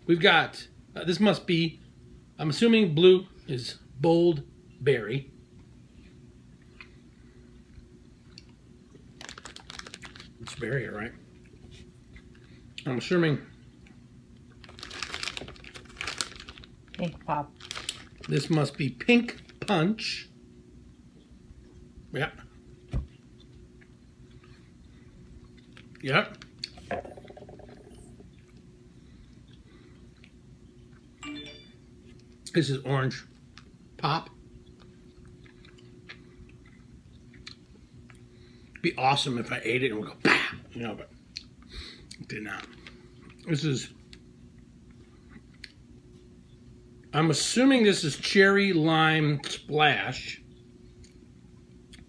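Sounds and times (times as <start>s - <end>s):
steady low hum: 0.0s - 52.0s
chewing soft candy: 6.0s - 19.8s, 21.1s - 26.8s, 28.2s - 31.2s, 32.1s - 39.0s, 41.2s - 47.2s, 50.4s - 52.0s
faint chewing of gummy candy: 22.5s - 26.8s, 28.3s - 31.2s, 34.6s - 38.9s, 41.2s - 46.4s, 50.8s - 52.0s.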